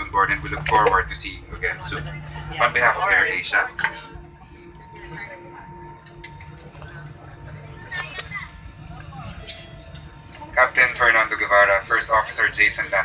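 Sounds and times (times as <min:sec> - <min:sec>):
airliner cabin hum: 0:00.0 - 0:13.0
cabin announcement: 0:00.0 - 0:13.0
faint passenger voices: 0:00.0 - 0:13.0.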